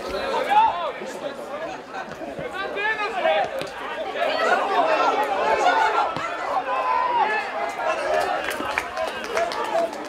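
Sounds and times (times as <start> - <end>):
overlapping voices chatter: 0.0 - 10.0.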